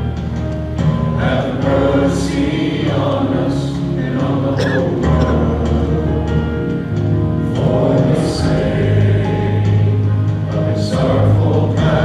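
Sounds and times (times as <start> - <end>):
worship band playing: 0.0 - 12.0
voices singing held notes: 1.1 - 12.0.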